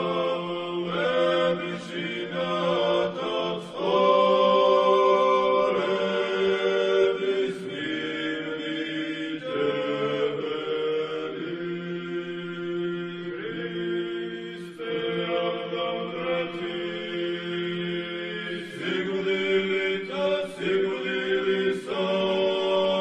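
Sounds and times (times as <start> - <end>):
voices singing slow chant: 0.0 - 23.0.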